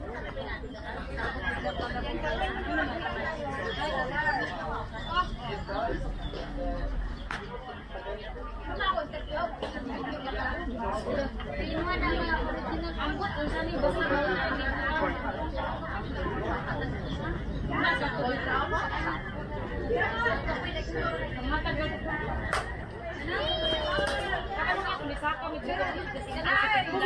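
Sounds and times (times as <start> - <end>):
people talking: 0.0 - 27.0.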